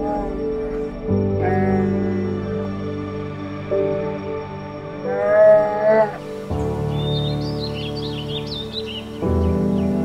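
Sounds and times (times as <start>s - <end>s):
calm background music: 0.0s - 10.0s
bear cub bawling: 1.4s - 2.8s, 5.1s - 6.3s.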